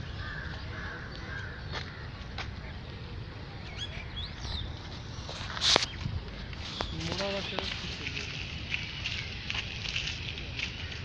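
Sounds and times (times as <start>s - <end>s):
crow cawing: 0.1s - 2.1s.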